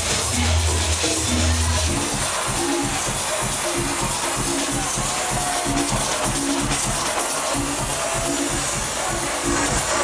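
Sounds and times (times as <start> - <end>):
kick-drum beat: 0.0 - 10.0
loud house music: 0.0 - 10.0.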